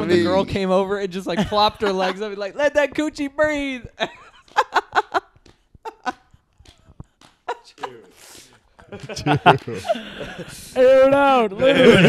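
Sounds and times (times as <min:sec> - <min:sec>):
men laughing: 0:01.3 - 0:02.4, 0:04.0 - 0:12.0
breathy hiss: 0:08.0 - 0:08.7.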